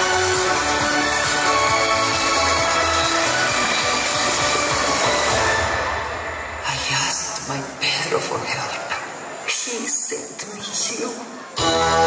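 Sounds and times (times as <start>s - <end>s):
soundtrack music from speakers: 0.0s - 7.8s, 11.5s - 12.0s.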